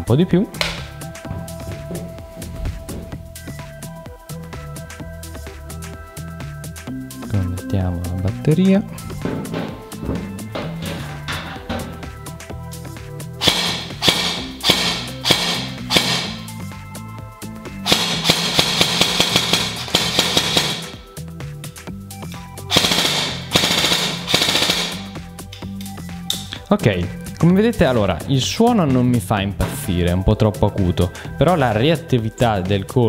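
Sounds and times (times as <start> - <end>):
airsoft rifle firing bursts: 13.4 - 16.5, 17.9 - 21.1, 22.7 - 25.2.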